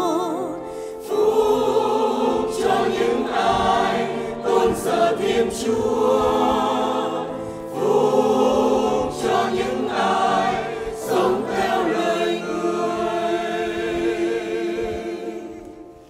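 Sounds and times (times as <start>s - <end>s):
church choir singing a hymn: 0.0s - 16.0s.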